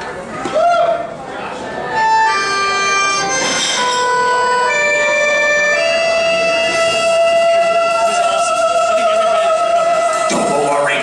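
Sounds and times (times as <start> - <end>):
live band long held note: 0.6 - 11.0
accordion: 1.8 - 11.0.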